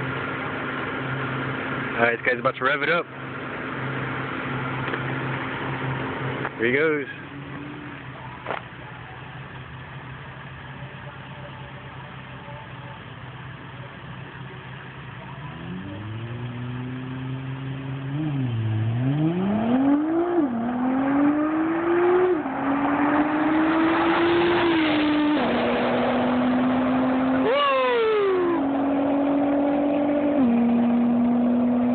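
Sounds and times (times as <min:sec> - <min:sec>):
car engine idling and accelerating: 0:00.0 - 0:31.9.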